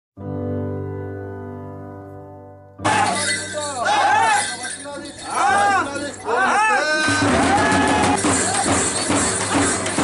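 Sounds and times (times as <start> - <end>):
bright clashing ringing sound: 2.9 - 6.6.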